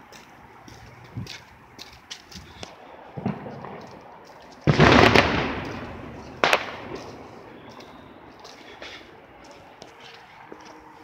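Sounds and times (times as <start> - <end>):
fireworks bangs: 3.1 - 8.9.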